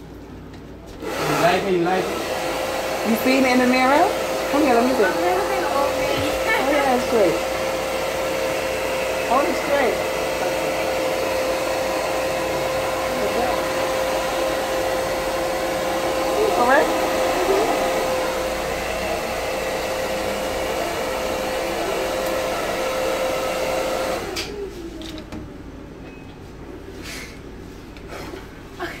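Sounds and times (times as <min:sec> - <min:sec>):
electric hair clippers buzzing: 0:01.0 - 0:24.5.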